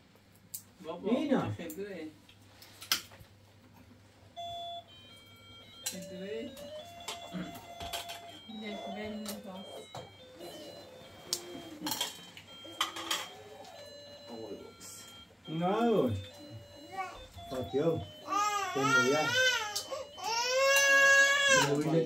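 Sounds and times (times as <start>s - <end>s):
electronic beeping tune: 4.4s - 18.3s.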